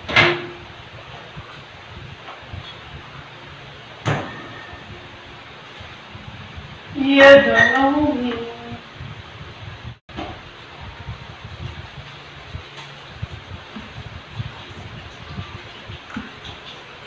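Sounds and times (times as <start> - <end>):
electric fan whooshing hiss: 0.0 - 17.0.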